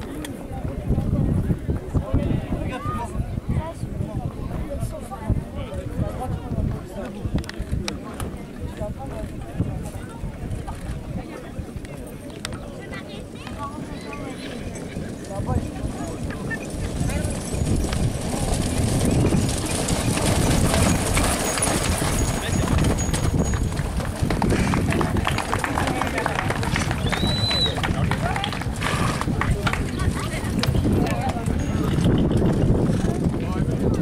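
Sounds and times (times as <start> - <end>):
horse hoofbeats on grassy ground: 13.4 - 33.2.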